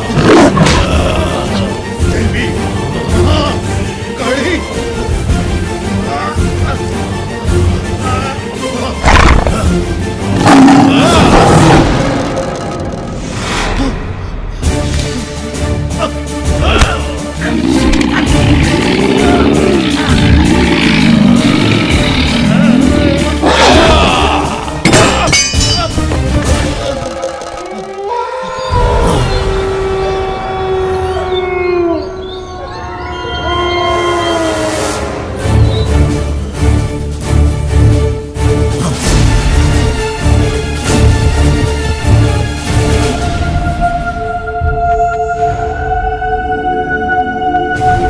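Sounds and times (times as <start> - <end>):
dramatic horror music: 0.0 - 48.0
roar-like sound effect: 9.0 - 13.9, 17.4 - 24.8.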